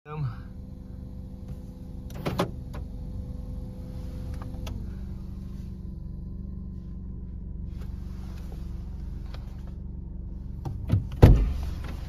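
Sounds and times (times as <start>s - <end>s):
car engine humming: 0.1s - 12.0s.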